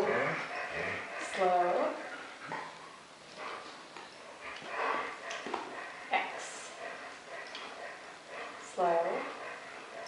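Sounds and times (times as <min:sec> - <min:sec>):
puppy breathy noises: 0:00.0 - 0:10.0.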